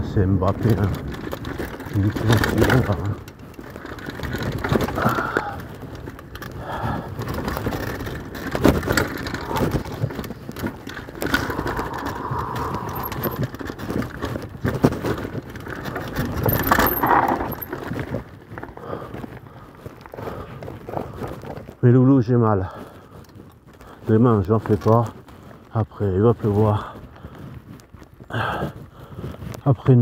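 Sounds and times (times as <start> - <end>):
bike chain and parts clattering: 0.0 - 30.0
tyre noise: 0.0 - 30.0.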